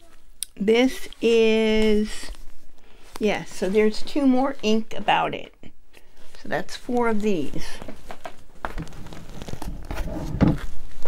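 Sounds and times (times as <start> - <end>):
packaging rustling: 7.8 - 11.0.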